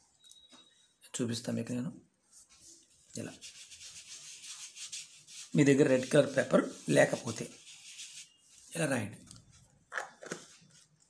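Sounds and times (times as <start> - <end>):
fingertips rubbing paper: 3.2 - 8.7.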